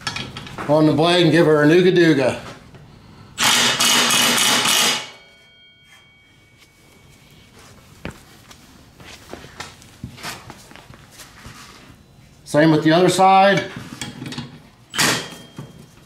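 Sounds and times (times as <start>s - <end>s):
impact wrench hammering bolt: 3.4s - 5.2s, 15.0s - 15.4s
faint metallic ring: 5.0s - 8.2s, 14.9s - 16.0s.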